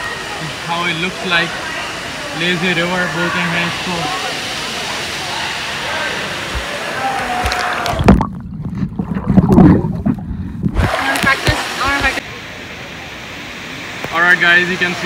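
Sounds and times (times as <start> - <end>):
water splashing in a pool: 0.0 - 15.0
muffled underwater sloshing: 7.8 - 12.2.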